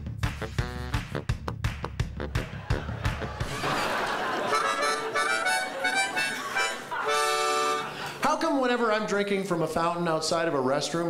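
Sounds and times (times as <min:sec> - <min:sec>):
harmonica playing: 0:00.4 - 0:08.2.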